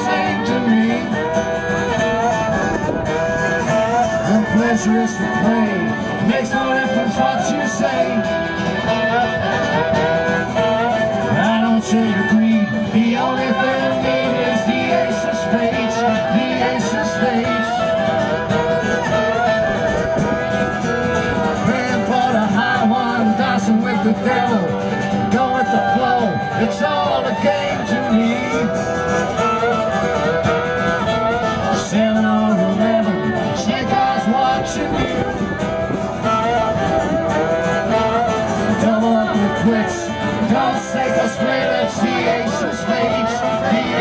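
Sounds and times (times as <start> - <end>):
fiddle playing held notes: 0.0 - 44.0
live country band: 0.0 - 44.0
plucked acoustic strings: 0.0 - 44.0
strummed guitar: 0.0 - 44.0.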